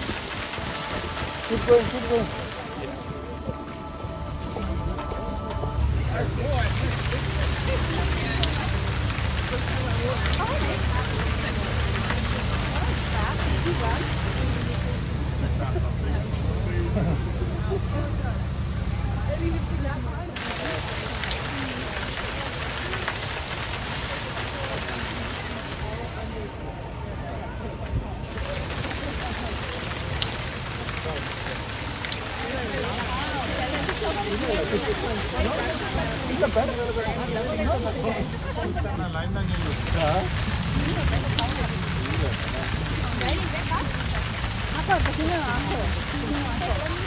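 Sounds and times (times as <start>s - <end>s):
rain on umbrellas: 0.0s - 17.7s, 20.2s - 26.6s, 28.2s - 38.6s, 39.3s - 47.0s
faint crowd chatter: 0.0s - 47.0s
faint voices: 0.0s - 47.0s.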